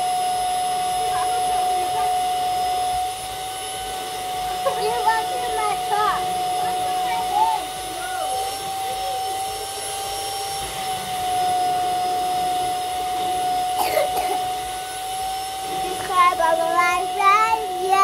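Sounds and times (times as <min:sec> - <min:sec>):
vacuum cleaner whine: 0:00.0 - 0:18.0
children's voices: 0:04.6 - 0:08.5, 0:15.8 - 0:18.0.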